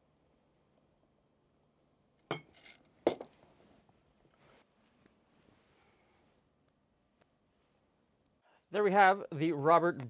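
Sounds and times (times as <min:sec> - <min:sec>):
glass clinking on wooden counter: 0:02.3 - 0:03.3.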